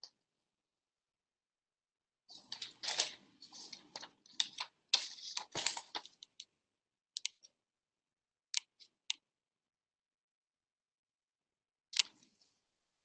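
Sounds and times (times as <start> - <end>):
paper rustling and crinkling: 2.3 - 6.3.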